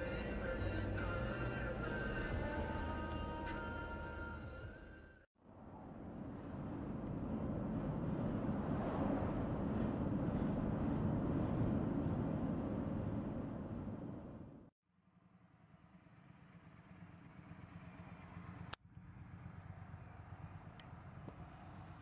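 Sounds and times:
music: 0:00.0 - 0:05.3
road and tyre noise: 0:00.0 - 0:22.0.

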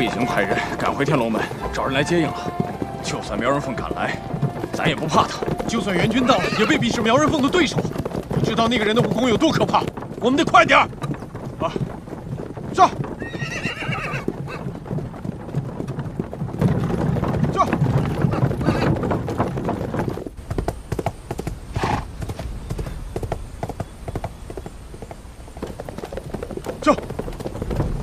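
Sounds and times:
horse whinnying: 0:00.0 - 0:07.8, 0:12.8 - 0:14.8, 0:17.5 - 0:19.1
horse hooves clip-clopping: 0:00.0 - 0:28.0.

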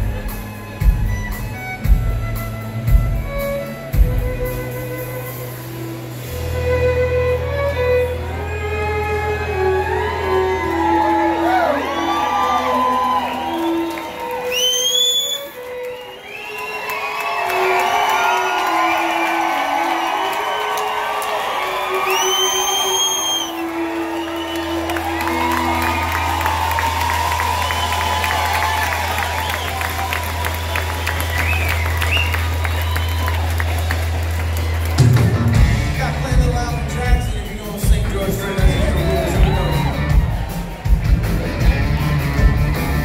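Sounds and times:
country band with fiddle: 0:00.0 - 0:20.1, 0:20.8 - 0:43.0
crowd cheering and whooping: 0:09.0 - 0:35.8, 0:38.2 - 0:43.0
loud rising whistles: 0:13.1 - 0:33.5.

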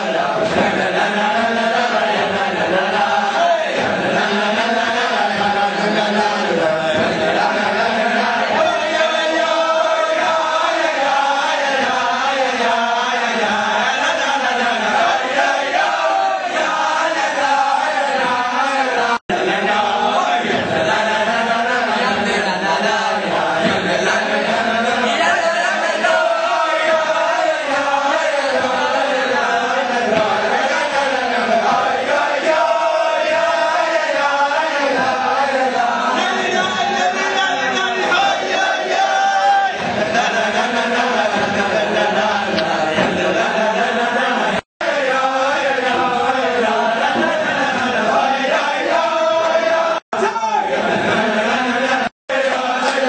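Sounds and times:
group of voices chanting: 0:00.0 - 0:53.0.

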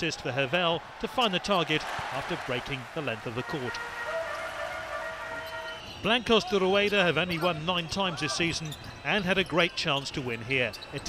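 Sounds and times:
crowd noise: 0:00.0 - 0:11.0
horn sounding: 0:03.3 - 0:05.9.

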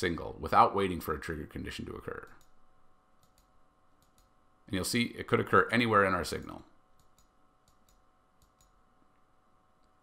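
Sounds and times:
computer mouse clicks: 0:02.2 - 0:02.6, 0:03.2 - 0:04.4, 0:07.0 - 0:08.8.

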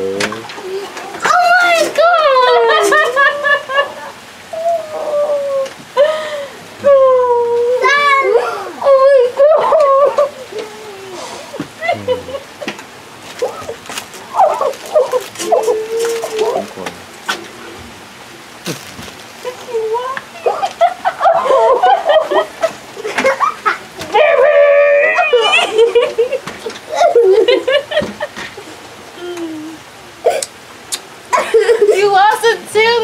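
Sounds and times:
animal whining: 0:13.4 - 0:16.9.

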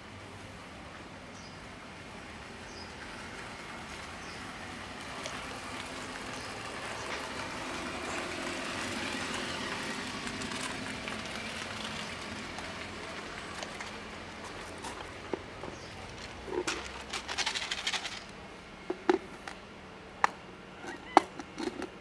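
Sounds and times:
vehicle passing: 0:03.0 - 0:19.5.

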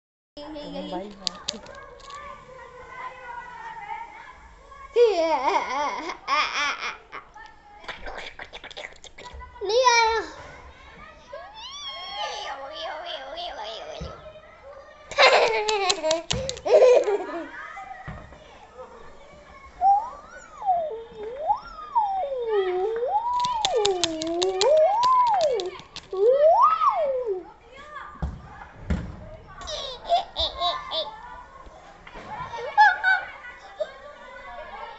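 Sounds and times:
young boy laughing: 0:15.1 - 0:17.5
child making siren-like ooo sound: 0:20.6 - 0:25.6.

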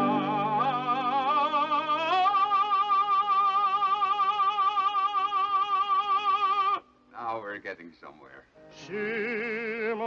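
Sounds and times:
operatic tenor singing: 0:00.0 - 0:06.8, 0:08.7 - 0:10.0.

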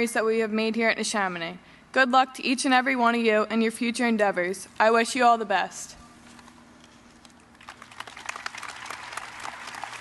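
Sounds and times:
crowd applauding: 0:07.5 - 0:10.0.

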